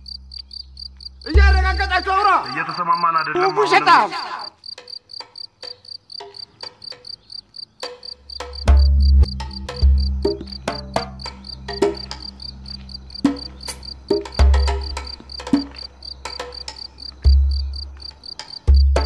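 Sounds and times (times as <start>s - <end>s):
crickets chirping: 0.0s - 19.0s
deep low music notes: 8.4s - 18.0s.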